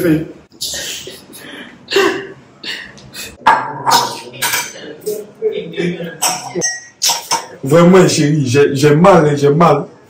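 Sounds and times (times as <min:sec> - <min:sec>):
dishes and cutlery clattering: 0:03.4 - 0:05.2, 0:06.1 - 0:07.6.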